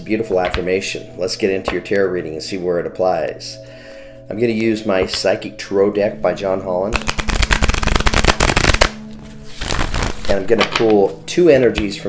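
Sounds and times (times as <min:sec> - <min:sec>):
cards being shuffled: 0:06.9 - 0:11.2.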